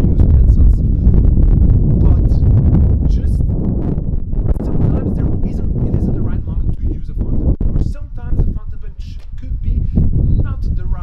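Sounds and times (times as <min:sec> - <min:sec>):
man talking: 0:00.0 - 0:01.0, 0:01.9 - 0:03.6, 0:04.5 - 0:11.0
wind buffeting microphone: 0:00.0 - 0:11.0.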